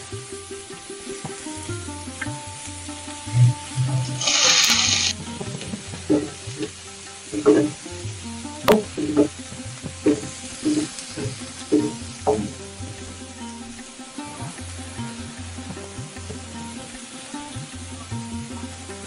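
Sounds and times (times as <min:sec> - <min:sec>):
background music: 0:00.0 - 0:19.0
onions sizzling in hot oil: 0:00.0 - 0:19.0.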